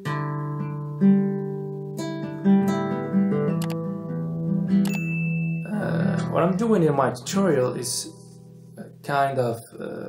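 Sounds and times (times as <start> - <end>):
classical guitar fingerstyle: 0.0 - 9.6.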